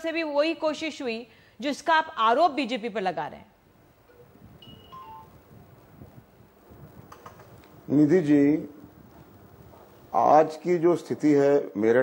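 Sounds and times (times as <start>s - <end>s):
low hiss: 0.0s - 12.0s
faint clicks: 7.1s - 7.8s.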